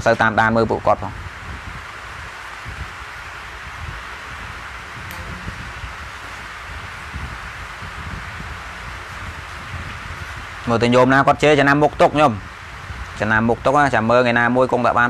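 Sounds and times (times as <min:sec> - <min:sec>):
background hiss: 0:00.0 - 0:15.0
faint low rumbling: 0:00.0 - 0:15.0.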